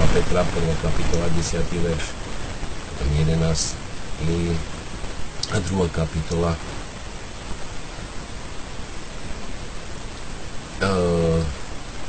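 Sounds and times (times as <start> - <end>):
man speaking: 0.0 - 2.2, 3.0 - 4.7, 5.4 - 6.6, 10.8 - 11.6
steady background hiss: 0.0 - 12.0.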